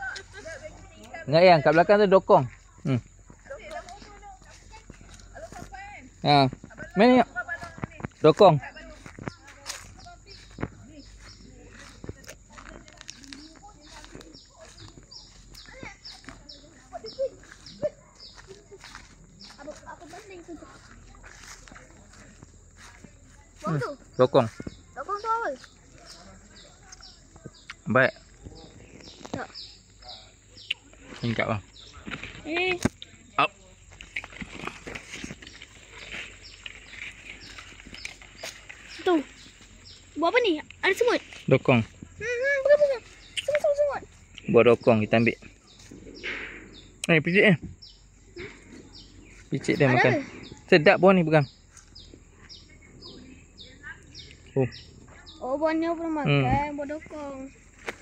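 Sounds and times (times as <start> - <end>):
leaves and twigs rustling: 0.0 - 46.5, 53.9 - 58.0.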